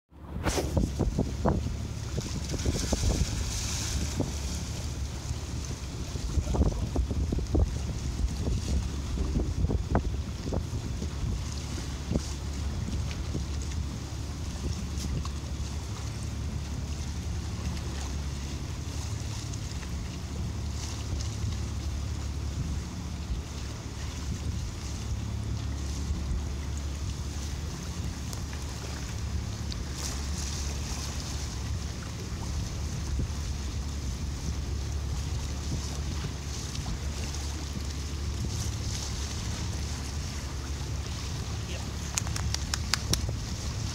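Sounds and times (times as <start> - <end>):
boat engine running: 0.1 - 43.9
water moving along hull: 0.1 - 43.9
wind on microphone: 0.1 - 43.9.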